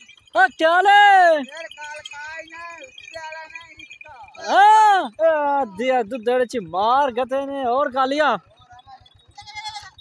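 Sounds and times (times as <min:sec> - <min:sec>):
young goat bleating: 0:09.3 - 0:10.0.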